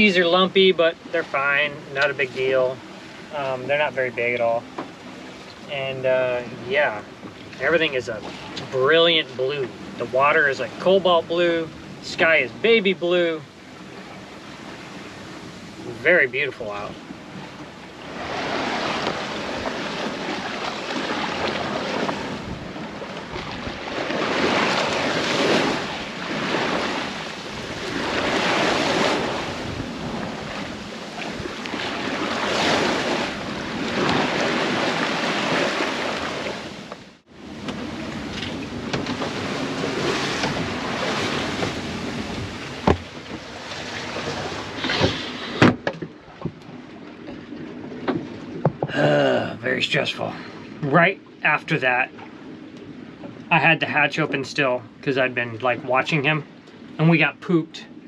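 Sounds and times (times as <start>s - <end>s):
water rushing along boat hull: 0.0s - 58.0s
wind on microphone: 16.6s - 46.6s
sharp knocks: 42.8s - 43.4s.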